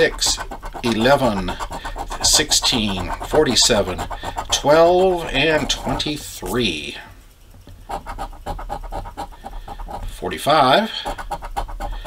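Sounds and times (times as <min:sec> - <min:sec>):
coin scratching lottery ticket: 0:00.0 - 0:06.9, 0:07.8 - 0:12.0.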